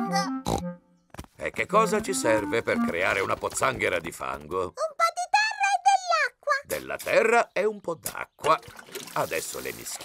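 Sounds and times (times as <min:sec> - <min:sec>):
man speaking: 0:01.4 - 0:04.8, 0:06.7 - 0:10.0
cartoon children's voices calling: 0:04.8 - 0:06.7.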